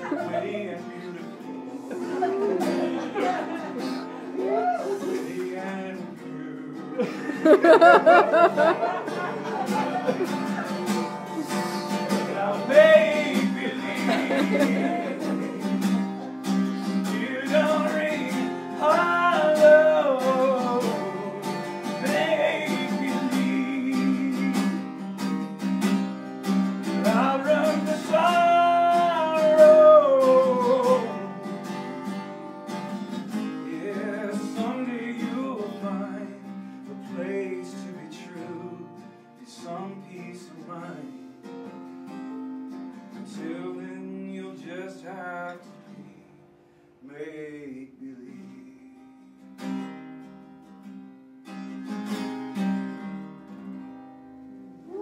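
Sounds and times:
man singing: 0.0 - 25.1, 26.8 - 31.9, 33.3 - 41.2, 43.1 - 46.4, 47.0 - 49.0
acoustic guitar strumming: 0.0 - 55.0.

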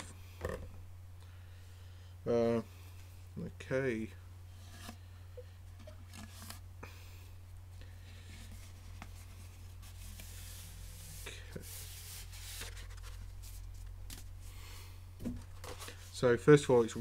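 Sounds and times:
steady low hum: 0.0 - 17.0
paper rustling and scraping: 8.2 - 14.3, 15.4 - 16.2.

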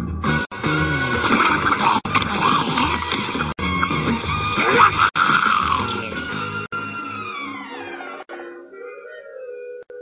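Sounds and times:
animal-like vocal noises: 1.2 - 3.5, 4.6 - 6.2.

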